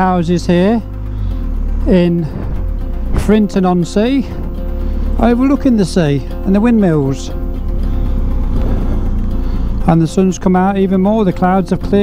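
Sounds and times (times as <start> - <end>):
motorcycle engine running: 0.0 - 12.0
wind and road rumble: 0.0 - 12.0.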